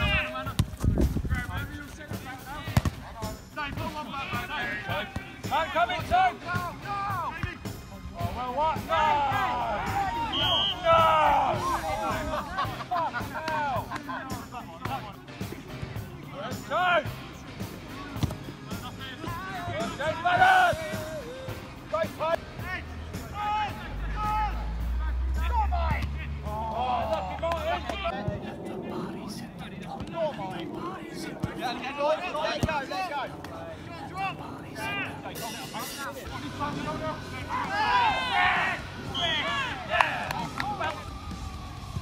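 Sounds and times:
ball being kicked: 0.4 - 1.2, 2.7 - 3.0
players and spectators shouting: 3.8 - 7.6, 8.2 - 13.9, 19.2 - 28.2, 30.1 - 42.0.

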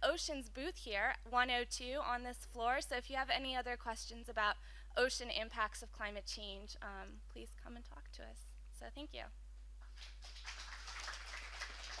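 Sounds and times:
audience applauding: 9.9 - 12.0.

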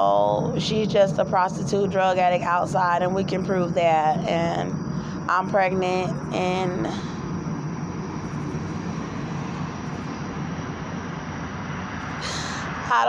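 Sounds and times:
road traffic rumble: 0.0 - 13.0
short breath: 12.2 - 12.8.

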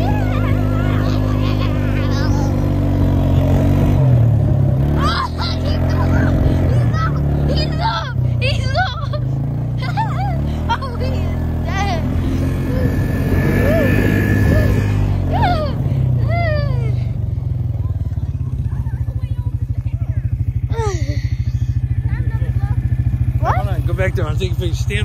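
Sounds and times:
atv engine running: 0.0 - 25.0.

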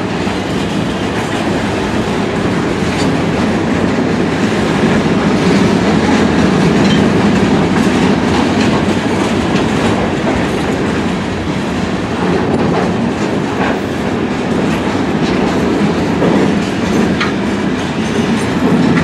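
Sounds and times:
train wheels rumbling on rail: 0.0 - 19.0
clattering over rail joints: 0.2 - 19.0.

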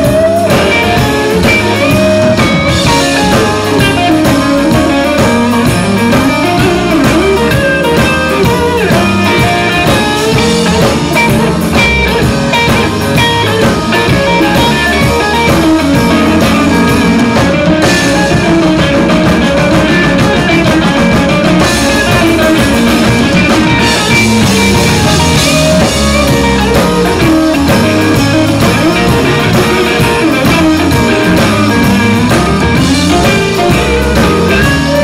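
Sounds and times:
bass guitar: 0.0 - 35.0
drums: 0.0 - 35.0
electric guitar: 0.0 - 35.0
keyboard: 0.0 - 35.0.

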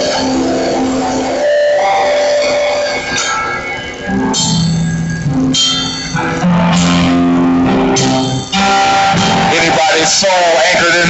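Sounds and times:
church music with guitar and drums: 0.0 - 11.0.

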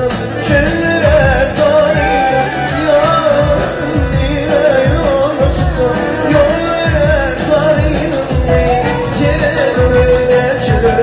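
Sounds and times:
amplified backing music: 0.0 - 11.0
man singing into microphone: 0.0 - 11.0.

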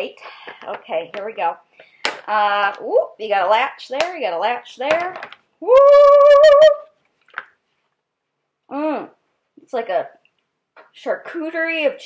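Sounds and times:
woman shouting woo: 5.6 - 6.9.

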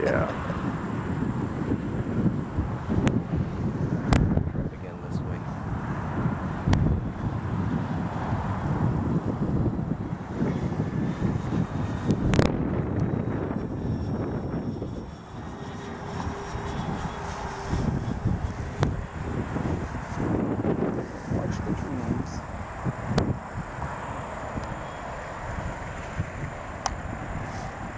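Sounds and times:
faint steady whine: 0.0 - 27.9
model plane motors and propellers: 0.0 - 27.9.

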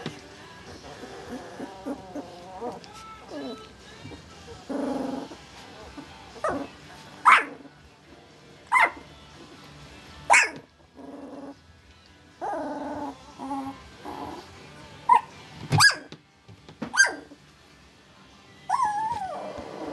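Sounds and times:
puppy grunting: 0.6 - 3.7, 4.4 - 7.8, 10.4 - 11.6, 12.4 - 15.3, 18.7 - 19.9
puppy barking: 6.4 - 7.6, 8.7 - 9.1, 10.3 - 10.7, 15.1 - 16.1, 16.9 - 17.4.

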